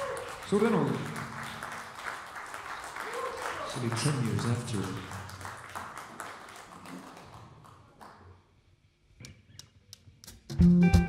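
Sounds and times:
audience applause: 0.0s - 8.4s.

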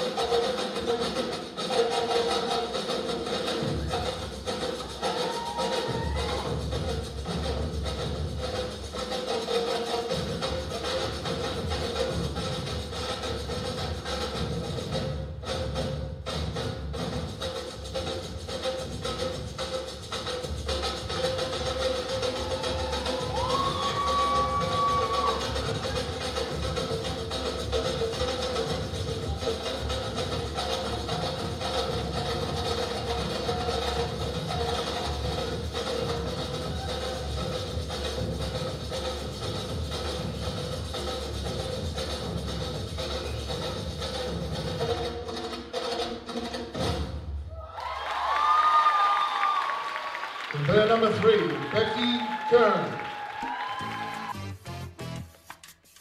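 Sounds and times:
salsa music with percussion: 0.0s - 49.8s, 50.4s - 56.0s
audience cheering: 5.0s - 6.7s, 22.1s - 26.5s, 47.5s - 54.4s
audience clapping: 22.1s - 26.6s, 47.6s - 56.0s.

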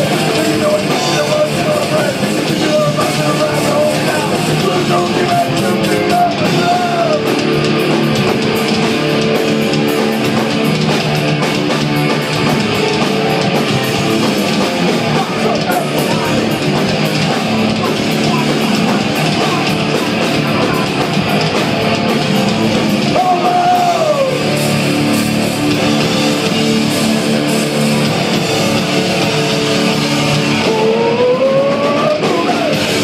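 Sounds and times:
bass guitar: 0.0s - 33.0s
distorted electric guitars: 0.0s - 33.0s
pounding drums: 0.0s - 33.0s.

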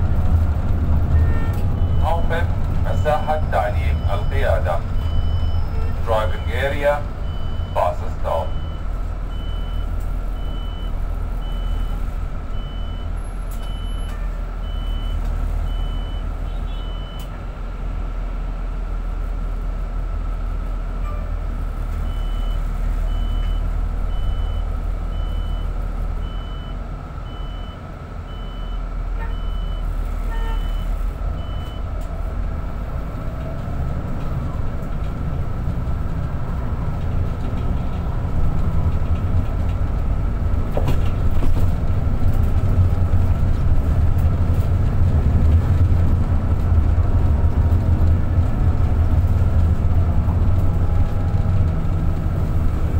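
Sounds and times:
bus engine and road rumble: 0.0s - 52.9s.

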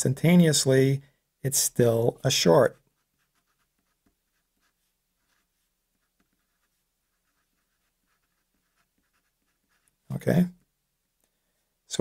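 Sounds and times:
marker scratching on paper: 2.5s - 10.1s.

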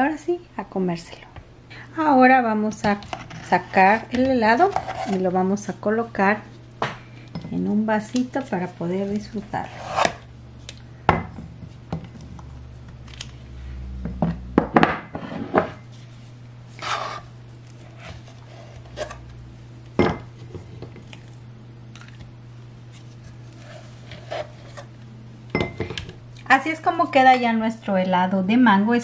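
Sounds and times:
metal scoop scraping ice cream: 3.1s - 5.3s, 16.7s - 19.2s, 23.5s - 24.9s.

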